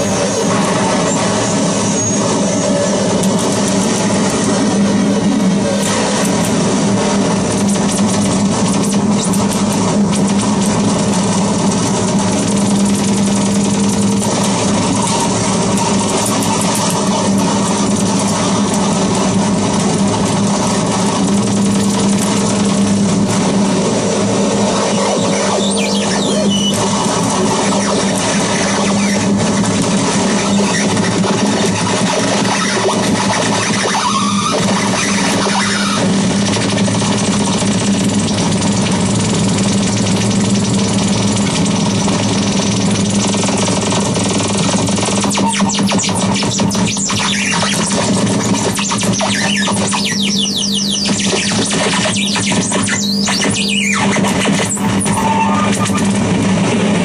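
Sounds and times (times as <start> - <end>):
sliding whistles: 0.0 - 3.0, 24.9 - 26.8
distorted harsh noise wall: 0.0 - 57.0.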